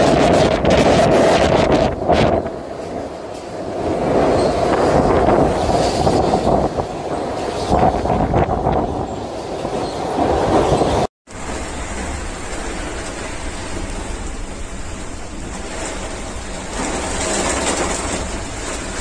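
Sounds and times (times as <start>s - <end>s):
gusting wind: 0.0s - 19.0s
heavy rain: 0.0s - 19.0s.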